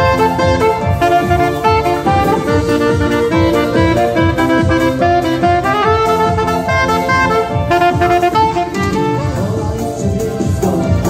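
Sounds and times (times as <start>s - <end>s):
electric guitar: 0.0s - 11.0s
keyboard: 0.0s - 11.0s
saxophone melody: 0.0s - 11.0s.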